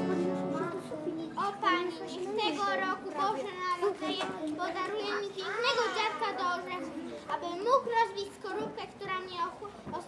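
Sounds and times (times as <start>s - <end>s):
child speaking: 0.0s - 10.0s.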